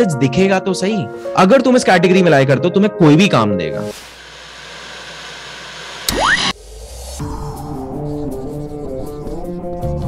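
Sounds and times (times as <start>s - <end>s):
rising sweep: 3.8s - 8.1s
television static hiss: 3.9s - 6.5s.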